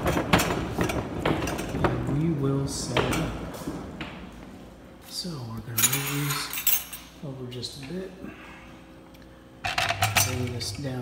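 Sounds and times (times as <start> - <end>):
metal kitchenware clinking: 5.8 - 7.1.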